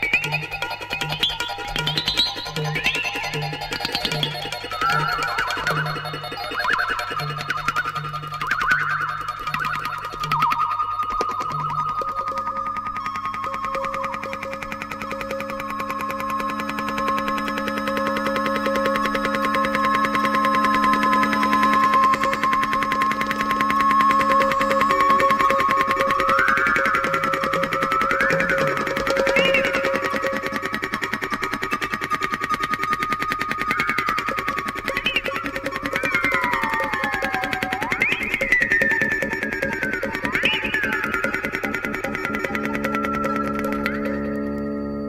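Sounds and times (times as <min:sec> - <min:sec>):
fast rattling pulse: 0:00.0 - 0:44.9
held electronic tones: 0:00.0 - 0:45.0
high gliding synth tones: 0:00.0 - 0:45.0.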